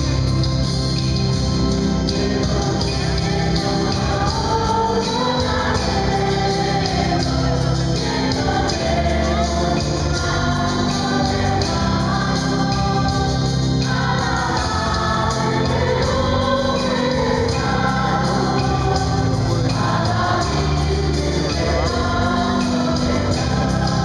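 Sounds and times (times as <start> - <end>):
choir singing a hymn: 0.0 - 24.0.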